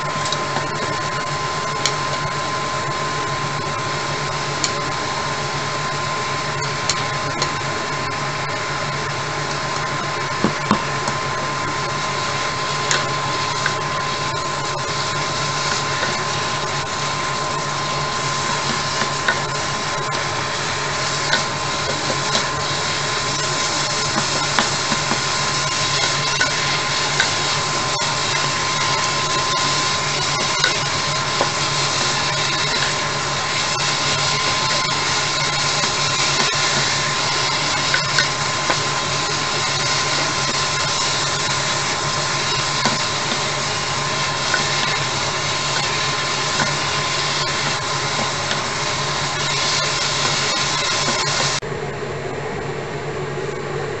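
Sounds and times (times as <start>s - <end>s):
food sizzling in a frying pan: 0.0s - 51.6s
steady hum: 0.0s - 54.0s.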